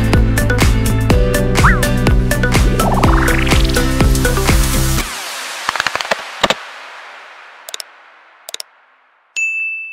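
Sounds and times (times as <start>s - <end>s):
music track with echo: 1.1s - 5.2s.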